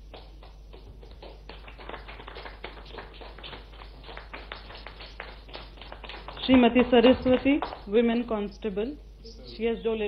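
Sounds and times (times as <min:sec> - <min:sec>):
light applause: 0:00.0 - 0:07.9.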